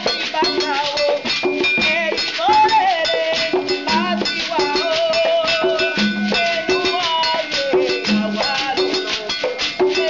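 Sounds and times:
rhythmic percussion: 0.0s - 10.0s.

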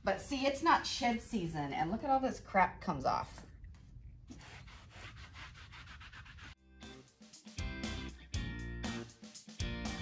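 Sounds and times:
background music: 6.6s - 10.0s.

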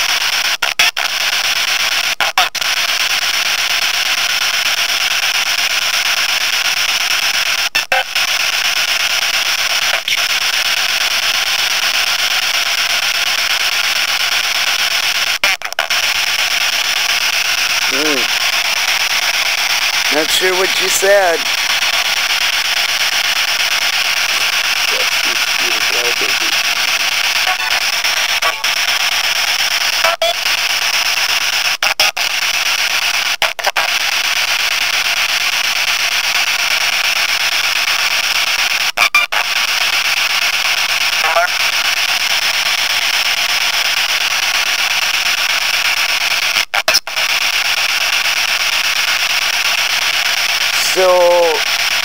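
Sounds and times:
radio static hiss: 12.6s - 34.7s, 41.0s - 41.9s, 45.4s - 52.0s
faint radio tones and voices: 17.8s - 18.5s, 20.1s - 21.6s, 24.2s - 27.8s, 50.8s - 51.7s.

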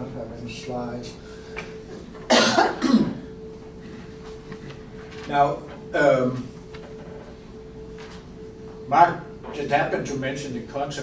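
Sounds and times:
man coughing: 2.3s - 3.3s.

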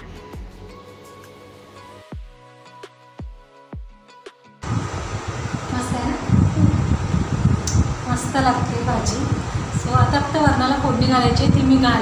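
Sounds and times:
low rumble of moving air: 4.6s - 12.0s.

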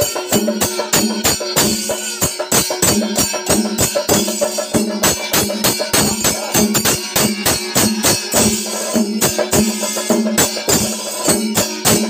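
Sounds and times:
brass hand cymbals ringing: 0.0s - 12.0s
drums beating: 0.0s - 12.0s.

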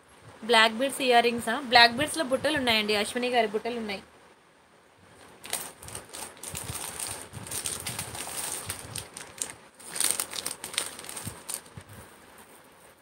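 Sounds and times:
plastic packets crinkling: 5.2s - 12.0s.

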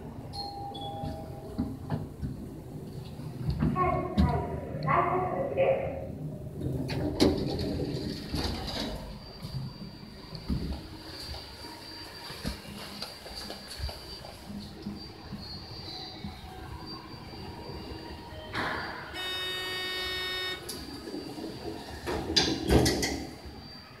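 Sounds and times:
elevator doors sliding shut: 6.3s - 11.0s, 15.7s - 23.8s
steady electronic tone: 14.0s - 21.4s.

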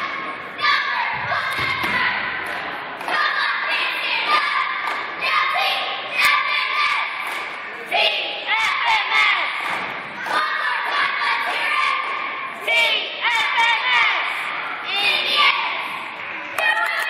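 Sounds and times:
cheerleaders shouting in unison: 3.1s - 17.0s.

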